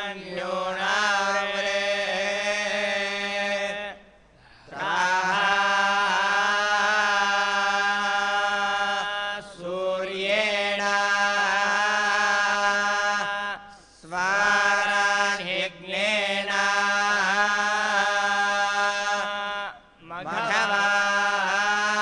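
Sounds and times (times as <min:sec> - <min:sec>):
men chanting in unison: 0:00.0 - 0:04.0, 0:04.7 - 0:22.0.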